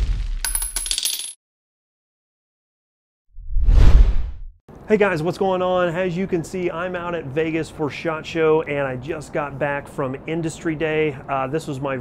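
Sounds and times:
deep whoosh: 3.4 - 4.5.

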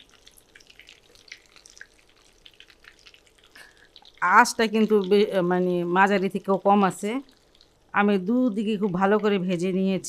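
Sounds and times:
oil crackling and popping: 0.0 - 9.4.

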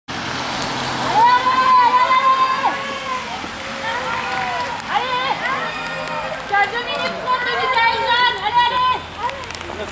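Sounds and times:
car on wet road: 0.1 - 9.9.

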